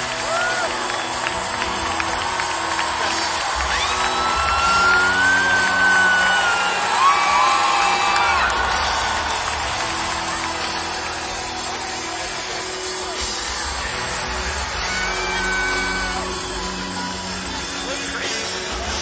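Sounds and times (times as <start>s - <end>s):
crowd cheering: 0.0s - 19.0s
live band music: 0.0s - 19.0s
long drawn-out whoop: 3.7s - 8.8s.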